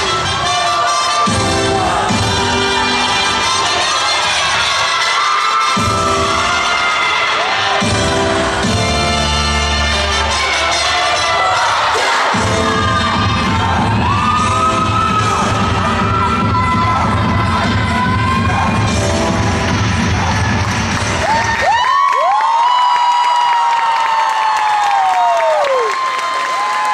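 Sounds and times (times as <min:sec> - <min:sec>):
dance music with heavy bass: 0:00.0 - 0:21.6
crowd cheering: 0:00.0 - 0:26.9.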